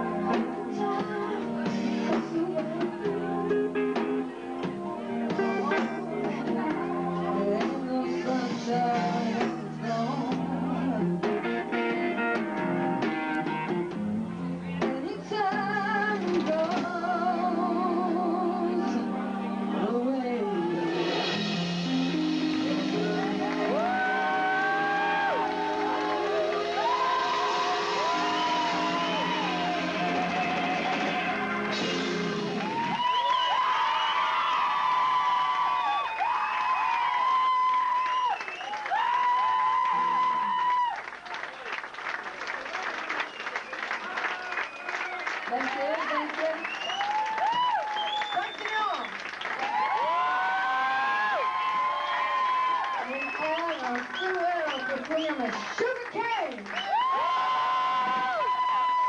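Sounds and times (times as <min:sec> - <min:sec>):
live rock band: 0:00.0 - 0:59.0.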